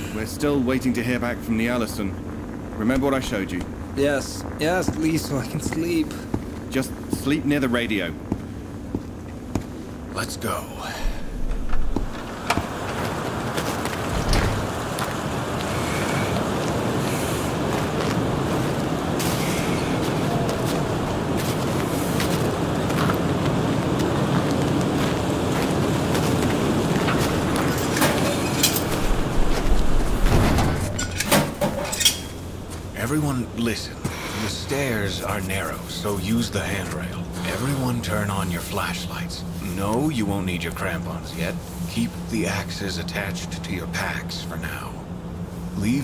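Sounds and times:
storm wind blowing: 0.0s - 46.0s.

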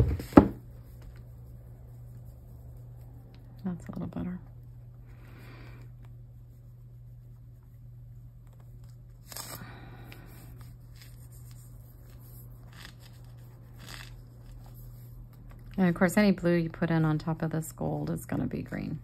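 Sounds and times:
steady low hum: 0.0s - 19.0s
fingertips rubbing paint on paper: 0.7s - 3.6s, 5.4s - 8.8s, 10.3s - 19.0s.

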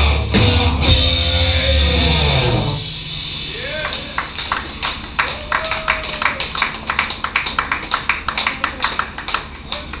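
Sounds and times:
scattered applause: 3.7s - 10.0s.

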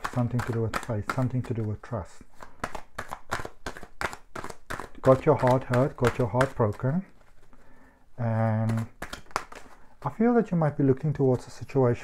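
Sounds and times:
cards being shuffled by hand: 0.0s - 12.0s.

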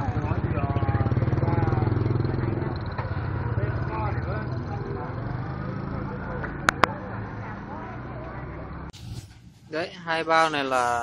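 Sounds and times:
motorbike engine running: 0.0s - 7.2s
people chattering: 0.0s - 8.9s.

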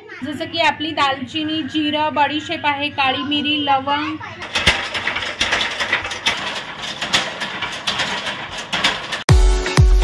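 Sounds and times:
machine running: 0.4s - 10.0s.

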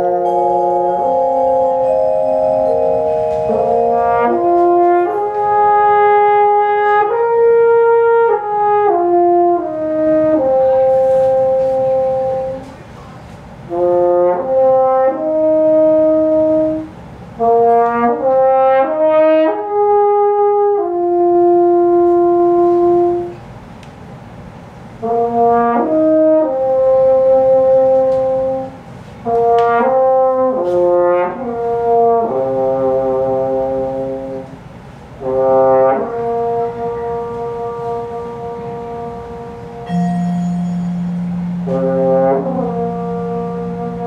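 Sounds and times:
french horn playing slow melody: 0.0s - 13.1s, 13.7s - 23.4s, 25.0s - 44.0s.

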